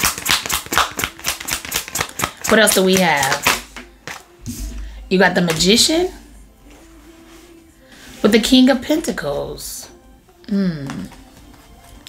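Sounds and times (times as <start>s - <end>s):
cards being shuffled: 0.0s - 4.4s.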